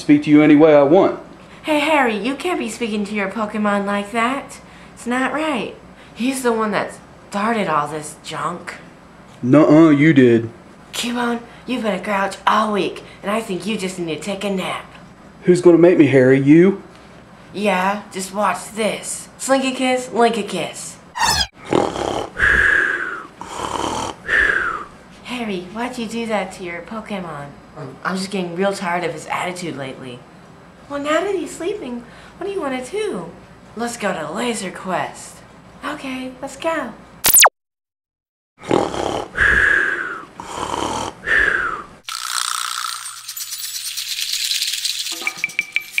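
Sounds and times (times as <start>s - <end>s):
cartoon snoring with whistle: 21.2s - 24.9s, 38.6s - 41.9s
music with shaker rattle: 42.1s - 46.0s.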